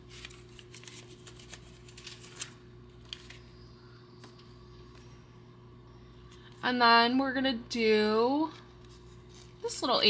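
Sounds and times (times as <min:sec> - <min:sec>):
banknotes rustling: 0:00.0 - 0:03.6.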